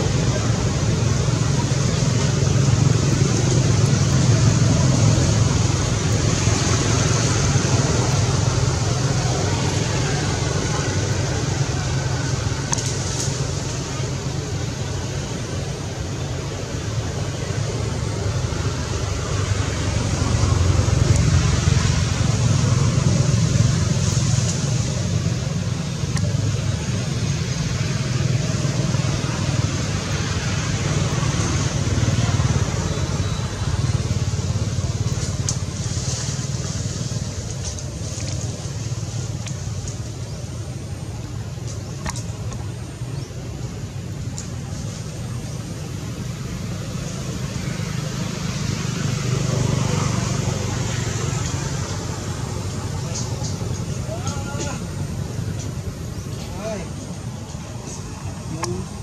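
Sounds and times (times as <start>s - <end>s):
continuous low rumble: 0.0s - 59.0s
steady hiss: 0.0s - 59.0s.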